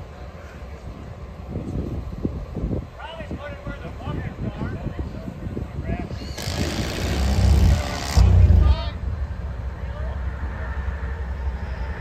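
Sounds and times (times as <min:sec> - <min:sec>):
diesel engine rumbling: 0:00.0 - 0:12.0.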